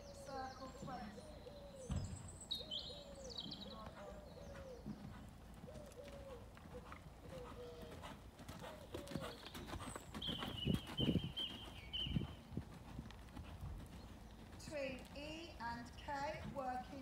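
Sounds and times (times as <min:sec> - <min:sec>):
horse hoofbeats on loose ground: 0:02.9 - 0:17.0.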